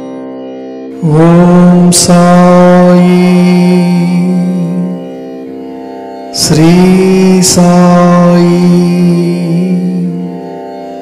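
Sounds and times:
steady drone: 0.0 - 11.0
person chanting: 0.9 - 5.5, 6.3 - 11.0.

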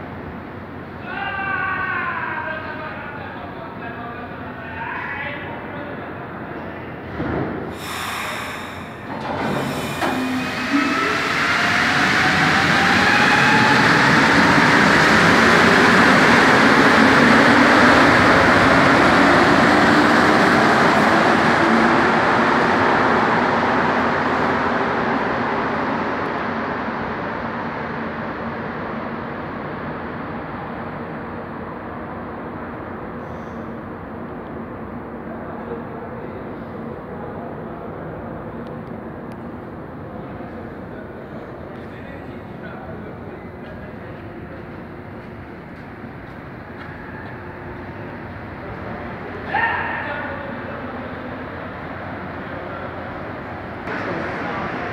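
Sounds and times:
train motor whine: 7.8 - 13.8.

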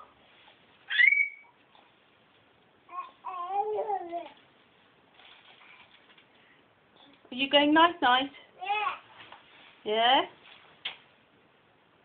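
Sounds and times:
baby squealing: 0.9 - 1.6.

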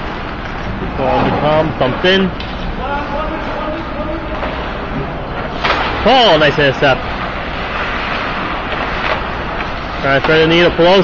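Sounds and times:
ice rink background noise: 0.0 - 11.0.

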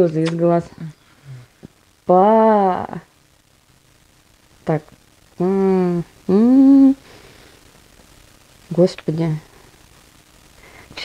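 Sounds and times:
woman humming: 5.4 - 7.0.

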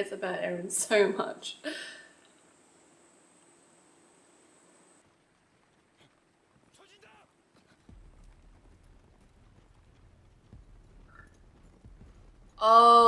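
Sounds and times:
faint low rumble: 2.0 - 13.0
hoofbeats of galloping horses: 5.2 - 13.0.

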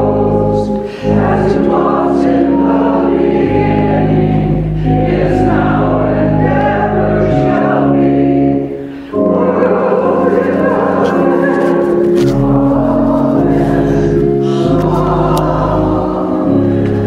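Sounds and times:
congregation singing a hymn: 0.0 - 17.0
organ accompaniment: 0.0 - 17.0.

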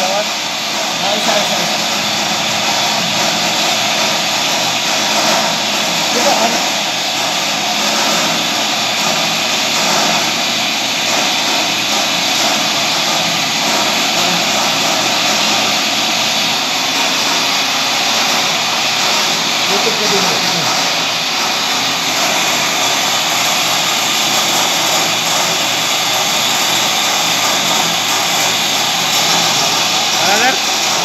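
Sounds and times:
lathe machinery running: 0.0 - 31.0.

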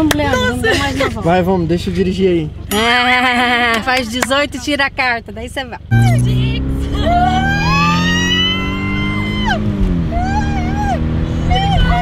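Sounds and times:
car driving rumble: 0.0 - 12.0.

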